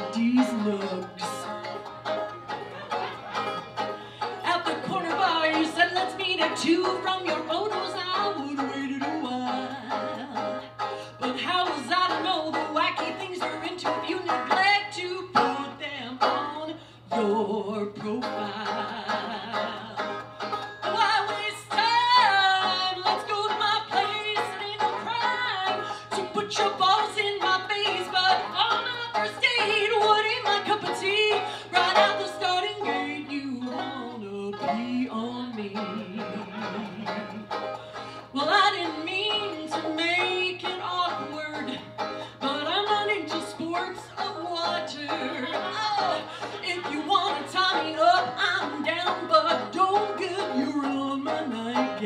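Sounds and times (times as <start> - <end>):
woman singing bluegrass: 0.0 - 2.3, 2.9 - 52.0
banjo: 0.0 - 52.0.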